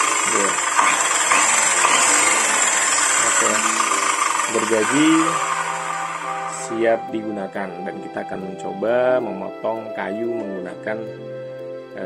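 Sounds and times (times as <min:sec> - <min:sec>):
circular saw whining: 0:00.0 - 0:08.2.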